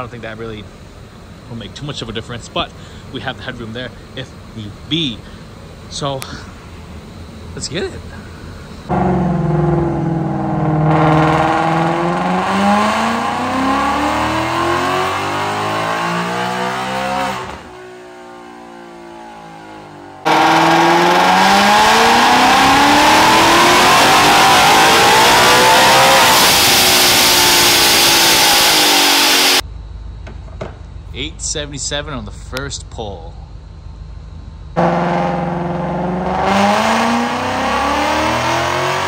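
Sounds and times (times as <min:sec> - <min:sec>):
car engine revving at full throttle: 0:08.9 - 0:29.6, 0:34.8 - 0:39.0.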